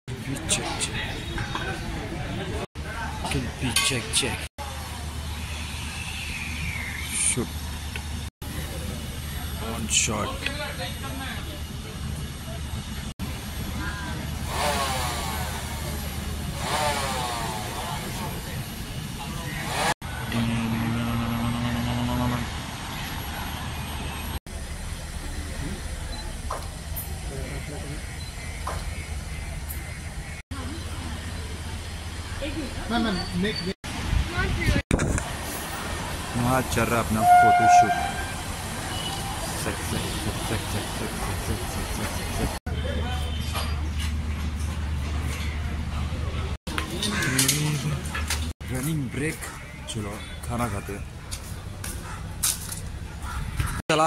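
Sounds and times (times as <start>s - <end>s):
people talking: 0.1s - 5.4s, 8.5s - 12.8s, 17.8s - 22.5s, 25.2s - 28.0s, 30.5s - 35.3s, 36.3s - 38.2s, 39.5s - 43.6s, 45.9s - 51.1s
low engine drone: 4.6s - 32.4s, 36.3s - 42.6s.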